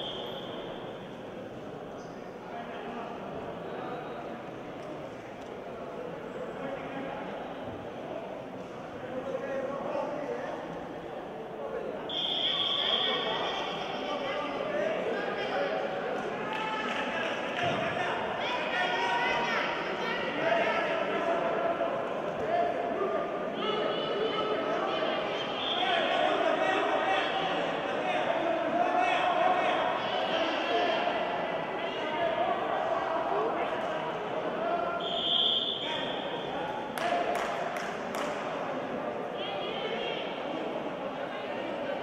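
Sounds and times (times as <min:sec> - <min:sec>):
high whistle: 0:00.0 - 0:01.0, 0:12.1 - 0:13.4, 0:35.0 - 0:36.6
people shouting in a hall: 0:00.0 - 0:01.3, 0:11.8 - 0:42.0.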